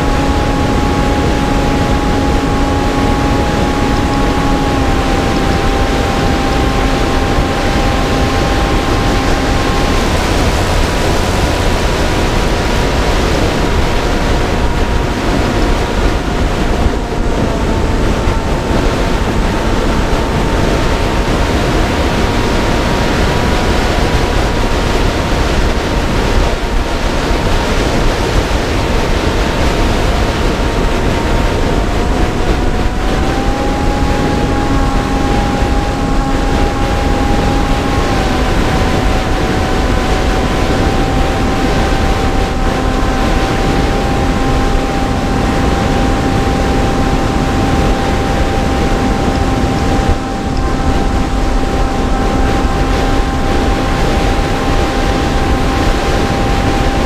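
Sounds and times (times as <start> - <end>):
motor whine: 0.0 - 57.0
wind rushing over camera: 0.0 - 57.0.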